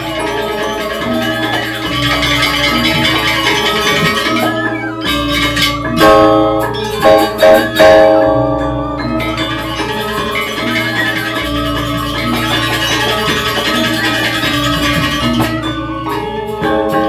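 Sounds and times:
gamelan metallophones playing: 0.0 - 17.0.

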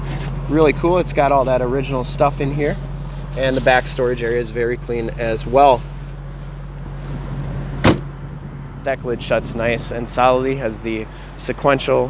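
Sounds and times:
steady low hum: 0.0 - 12.0
car trunk lid slamming: 7.7 - 8.2.

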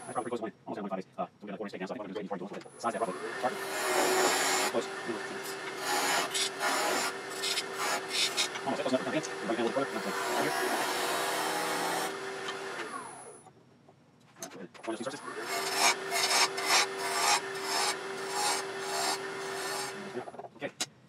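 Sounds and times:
lathe motor hum: 3.0 - 13.3, 15.2 - 20.3
lathe tool cutting wood: 3.0 - 13.3, 15.2 - 20.3.

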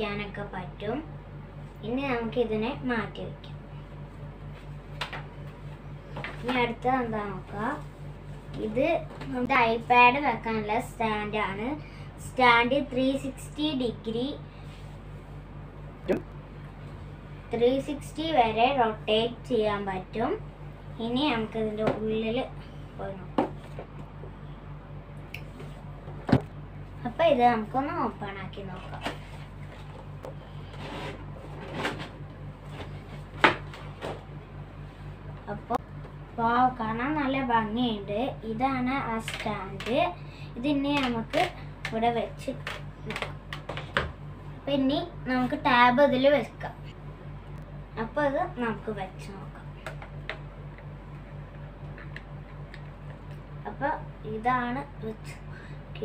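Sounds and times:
pulsing low hum: 0.0 - 56.0
cardboard scraping and rustling: 30.7 - 33.3
woman's voice: 35.4 - 35.8, 36.4 - 43.2, 48.0 - 49.8, 53.6 - 56.0.

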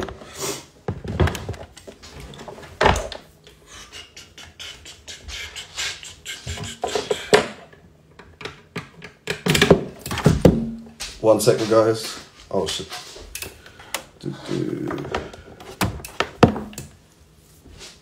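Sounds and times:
cables plugging thunks and clicks: 7.1 - 10.6, 15.0 - 17.0.

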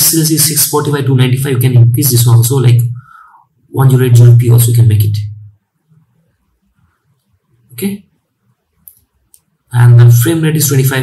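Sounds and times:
man's voice: 9.7 - 11.0.

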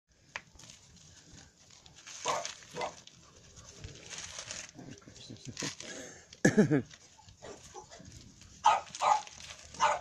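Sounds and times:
puppy yapping barks: 2.2 - 3.0, 8.6 - 10.0.

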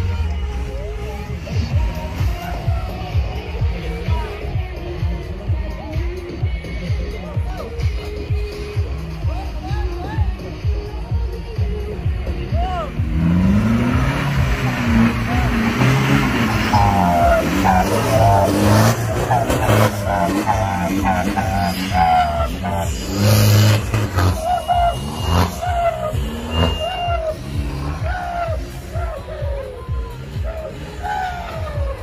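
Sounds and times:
off-road vehicle engine revving: 0.0 - 9.6, 10.4 - 32.0.

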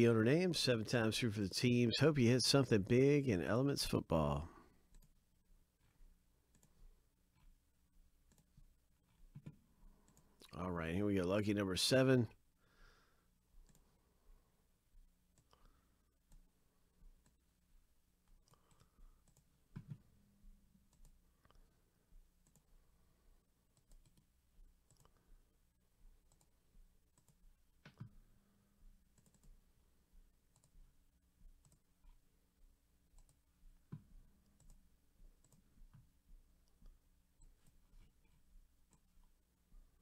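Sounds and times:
computer mouse and keyboard clicks: 8.3 - 10.5, 23.7 - 25.3, 27.1 - 28.2, 29.1 - 29.6, 30.5 - 30.8.

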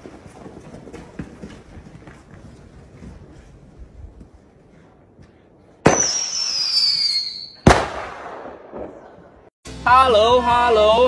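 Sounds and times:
firework bang: 5.8 - 9.1
firework whistle falling in pitch: 5.9 - 7.6.

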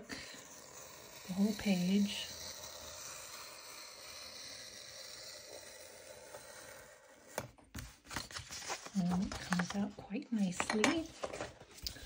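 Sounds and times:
sharp scratches: 0.0 - 7.4
knife scraping paper: 0.0 - 9.7
paper rustling: 7.3 - 10.0, 10.6 - 12.0.

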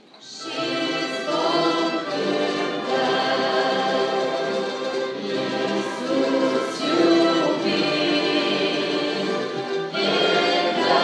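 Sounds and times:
orchestra playing slow hymn: 0.0 - 11.0
voices singing: 0.2 - 11.0.

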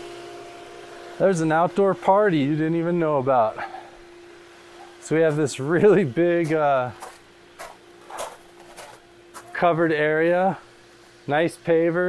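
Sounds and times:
soft footsteps on pavers: 6.4 - 9.6.

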